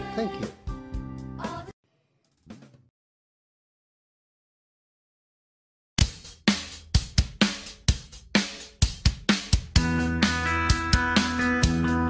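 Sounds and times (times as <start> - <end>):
drum kit beat: 6.0 - 12.0
band playing: 9.8 - 12.0.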